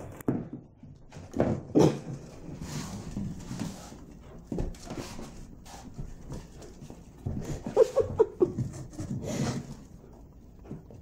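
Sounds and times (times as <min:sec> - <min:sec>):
dog paws scuffling on wood: 0:00.0 - 0:11.0.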